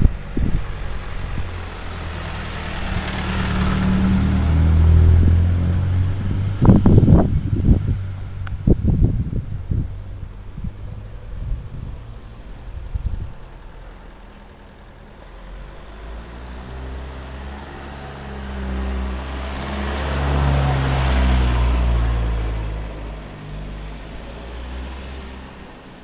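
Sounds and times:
car driving past: 0:00.0 - 0:08.5, 0:15.4 - 0:25.8.

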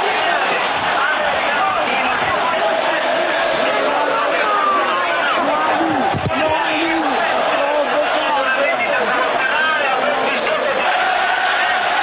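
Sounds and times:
crowd talking and shouting: 0:00.0 - 0:12.0.

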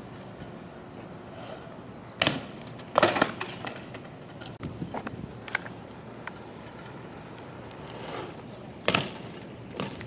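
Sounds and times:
bike hitting concrete: 0:02.2 - 0:04.6, 0:07.8 - 0:10.0
metallic rattle of bike: 0:02.2 - 0:04.6.

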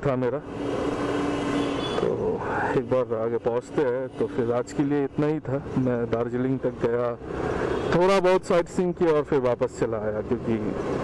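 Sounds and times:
wind and road rush: 0:00.0 - 0:11.0.

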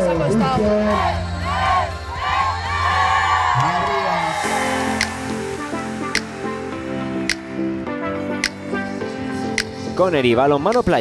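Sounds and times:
background music with low beat: 0:00.0 - 0:11.0
girls cheering and shouting: 0:00.7 - 0:06.4.

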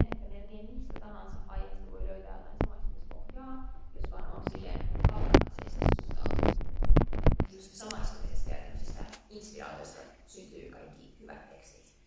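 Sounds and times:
woman talking over loudspeakers: 0:00.0 - 0:06.5, 0:07.5 - 0:12.0.

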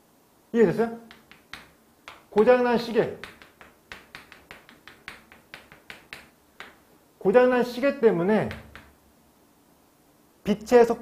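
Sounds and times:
chalk tapping and scraping on board: 0:01.0 - 0:07.0, 0:08.1 - 0:09.0.

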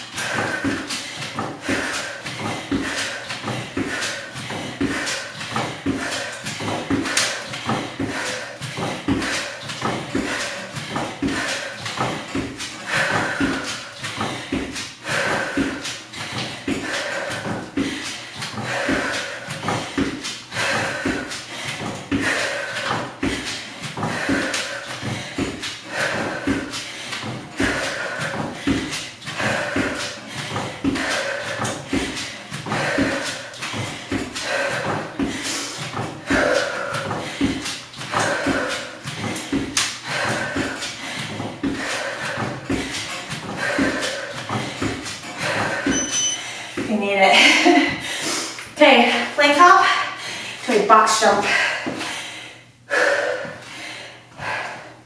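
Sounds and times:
feet stepping on a box: 0:00.0 - 0:46.1
woman breathing out rhythmically: 0:00.0 - 0:55.0.

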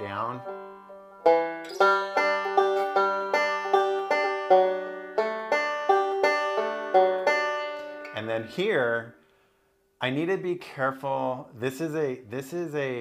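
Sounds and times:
banjo played fingerstyle: 0:00.0 - 0:09.1.

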